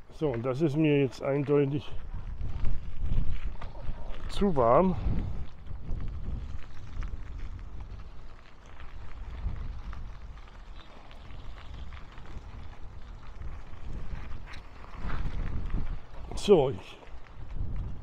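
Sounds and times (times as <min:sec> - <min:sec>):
low rumble on gravel road: 0:00.0 - 0:18.0
wind on microphone: 0:01.8 - 0:18.0.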